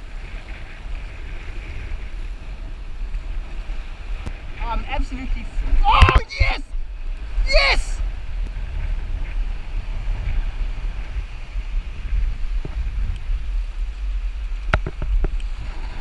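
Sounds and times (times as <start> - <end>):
sea water washing over rocks: 0.0 - 16.0
wind rumbling on microphone: 0.0 - 16.0.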